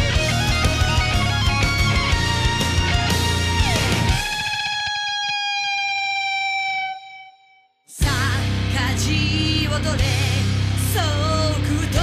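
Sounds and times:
heavy metal band playing: 0.0 - 5.7, 8.0 - 12.0.

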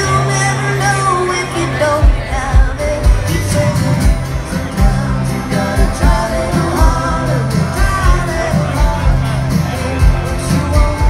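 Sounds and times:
live band playing: 0.0 - 11.0
bass drum beating: 2.0 - 11.0.

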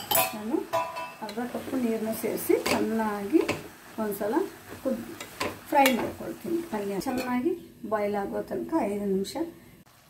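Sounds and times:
spoon clinking against pot: 0.0 - 1.4
spoon stirring in metal pot: 0.0 - 1.7
woman talking: 0.2 - 5.1, 5.7 - 9.6.

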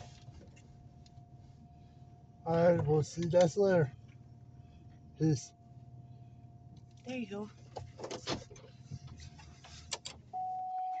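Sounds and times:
car engine idling: 0.0 - 10.7.

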